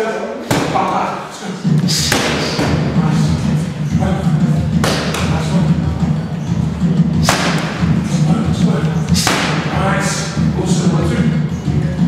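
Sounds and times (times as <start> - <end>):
boxing gloves striking mitts: 0.5 - 1.0, 2.0 - 2.9, 4.7 - 5.4, 7.2 - 8.0, 9.1 - 9.8.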